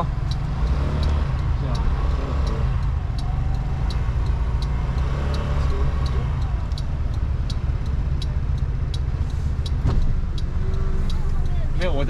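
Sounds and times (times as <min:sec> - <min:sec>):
engine and road rumble: 0:00.0 - 0:12.0
turn signal ticking: 0:00.0 - 0:12.0.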